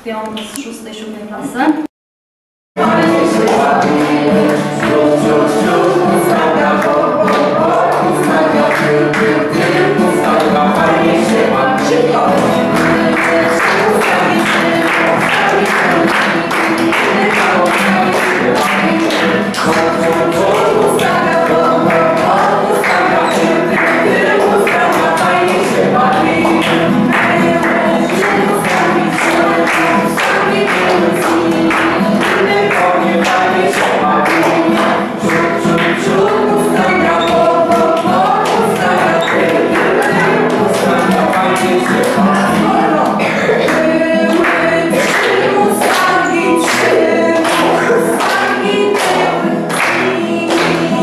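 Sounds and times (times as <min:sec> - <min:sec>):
clapping beat: 0:02.8 - 0:51.0
group singing upbeat song: 0:02.8 - 0:51.0.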